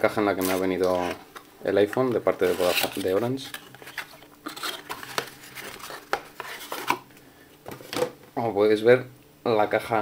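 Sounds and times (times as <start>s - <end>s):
cardboard scraping on cardboard: 2.4s - 3.2s.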